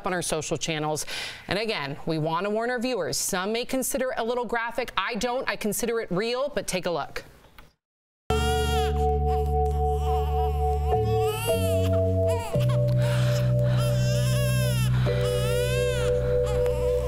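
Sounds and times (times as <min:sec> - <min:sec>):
newborn baby crying: 0:08.3 - 0:17.0
soft music of held chords: 0:08.3 - 0:17.0.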